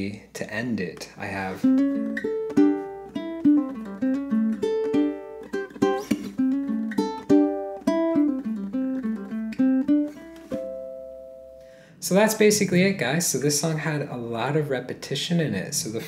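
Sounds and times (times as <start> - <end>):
ukulele fingerpicked melody: 1.2 - 11.8
ukulele harmonics chord ringing: 10.5 - 11.9.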